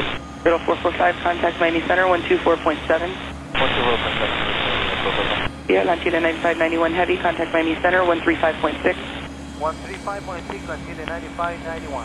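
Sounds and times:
radio static hiss: 0:00.0 - 0:01.4, 0:02.0 - 0:12.0
faint garbled radio voice: 0:03.6 - 0:05.5, 0:08.6 - 0:12.0.

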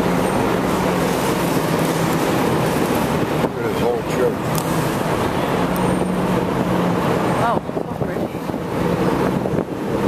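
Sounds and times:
city road noise: 0:00.0 - 0:10.0
engine hum: 0:00.0 - 0:10.0.

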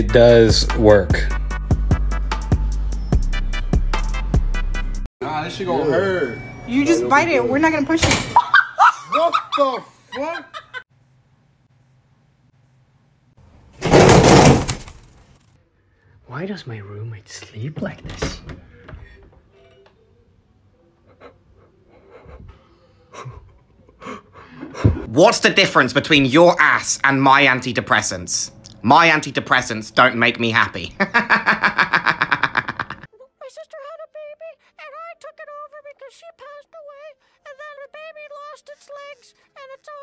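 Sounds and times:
young man laughing hard: 0:08.4 - 0:10.8, 0:21.1 - 0:25.1, 0:31.0 - 0:33.1
loud crashing clatter: 0:13.8 - 0:15.2.

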